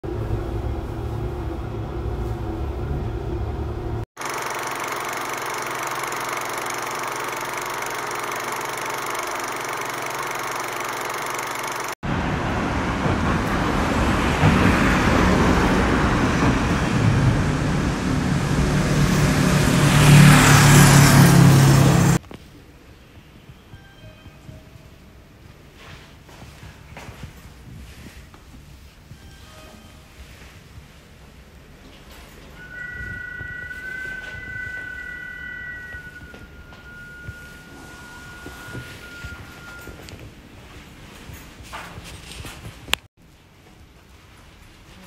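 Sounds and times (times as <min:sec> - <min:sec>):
street traffic: 0:00.1 - 0:23.4, 0:32.4 - 0:41.0
vehicle rumble: 0:12.0 - 0:22.2.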